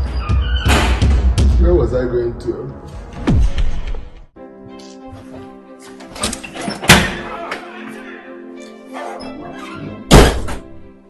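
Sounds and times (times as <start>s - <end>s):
soft music with sustained tones: 4.4s - 11.0s.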